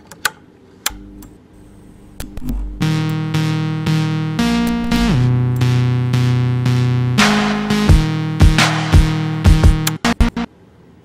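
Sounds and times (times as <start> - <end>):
low electric hum: 0.0 - 11.0.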